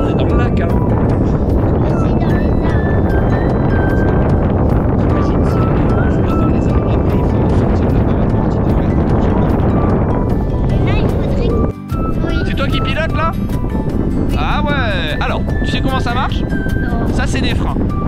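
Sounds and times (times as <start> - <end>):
wind rushing over microphone: 0.0 - 18.0.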